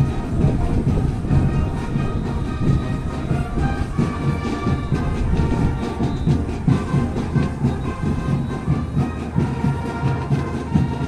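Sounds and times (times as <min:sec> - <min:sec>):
held wind instrument notes: 0:00.0 - 0:11.0
steady drum beat: 0:00.0 - 0:11.0.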